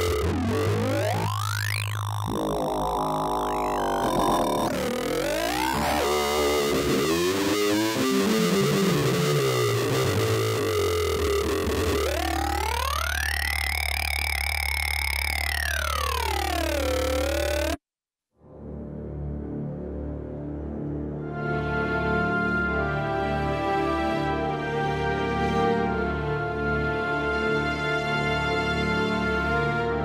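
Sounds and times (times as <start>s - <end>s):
gliding synth notes: 0.0s - 17.8s
low bass drone: 0.0s - 17.8s.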